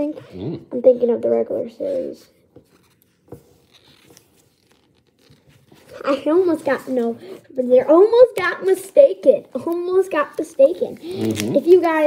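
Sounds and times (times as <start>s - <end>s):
cards rustling and ticking: 2.6s - 7.0s, 8.2s - 12.0s.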